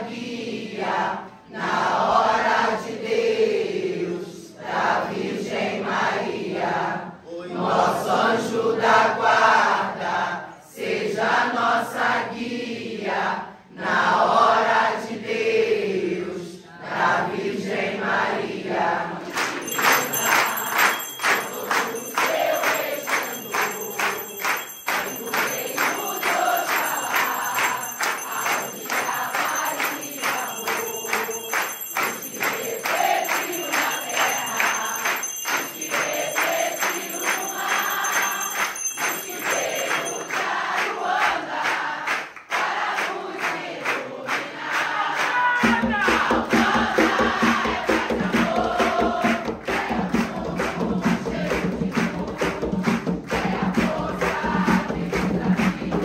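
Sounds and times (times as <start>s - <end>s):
congregation singing a chant: 0.0s - 56.0s
steady hand clapping: 19.2s - 56.0s.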